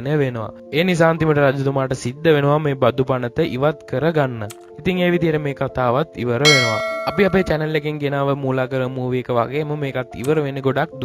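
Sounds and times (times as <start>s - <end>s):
bell ringing: 6.5s - 7.8s.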